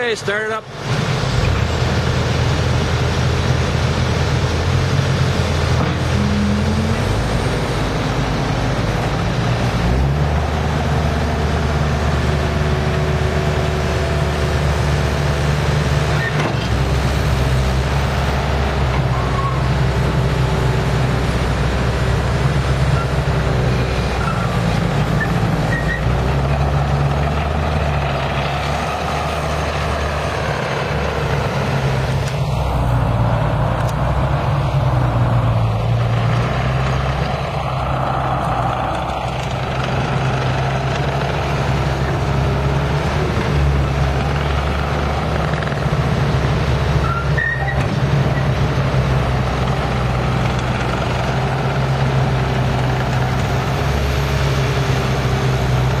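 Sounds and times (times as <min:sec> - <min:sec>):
diesel engine running: 0:00.0 - 0:56.0.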